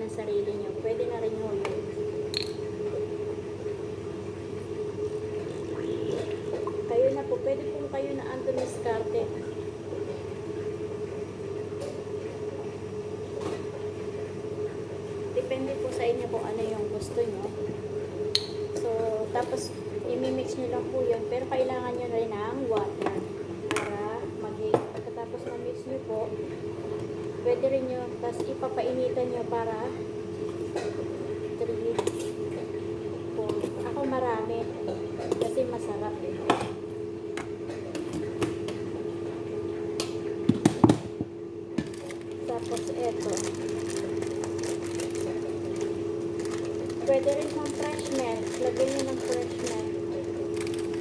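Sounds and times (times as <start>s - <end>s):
woman speaking: 0.0s - 1.8s, 6.9s - 9.4s, 15.4s - 17.6s, 18.8s - 26.4s, 27.4s - 30.0s, 31.6s - 32.2s, 33.4s - 34.8s, 35.4s - 36.6s, 42.4s - 43.7s, 47.0s - 50.3s
steady hum: 0.0s - 51.0s
food packet crinkling: 41.9s - 51.0s.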